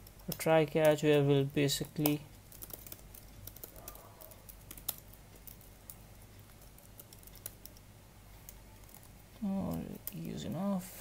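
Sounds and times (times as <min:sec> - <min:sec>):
typing on a laptop keyboard: 0:00.0 - 0:10.6
low steady hum: 0:00.0 - 0:11.0.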